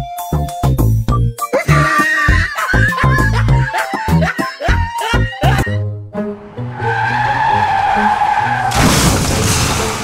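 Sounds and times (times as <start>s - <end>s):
motorcycle tire skidding on dirt: 6.6s - 10.0s
loud crash into clutter: 8.7s - 10.0s.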